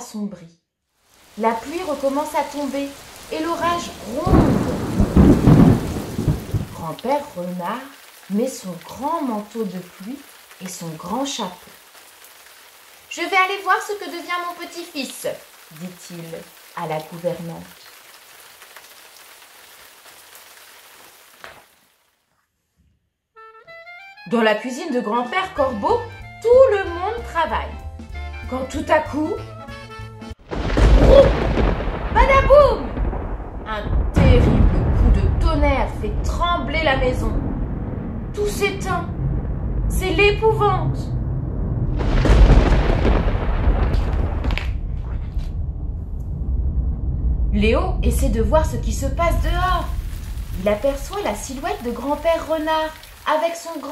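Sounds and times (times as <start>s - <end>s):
heavy rain hissing: 1.0s - 22.1s, 30.4s - 53.9s
low thump: 41.0s - 50.7s.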